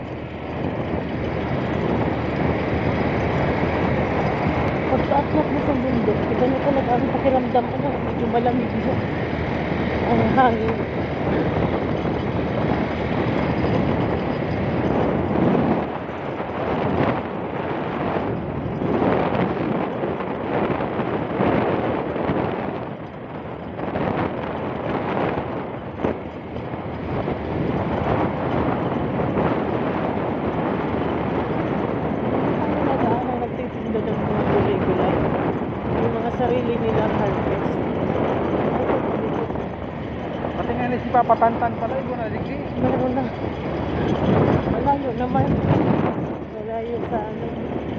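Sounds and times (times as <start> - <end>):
motorcycle engine: 0.0 - 47.9
wind rushing over microphone: 0.0 - 47.9.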